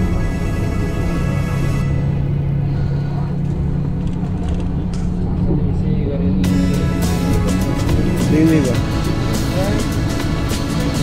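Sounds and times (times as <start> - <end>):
background music with low drone: 0.0 - 11.0
vehicle rumble from inside cabin: 0.0 - 11.0.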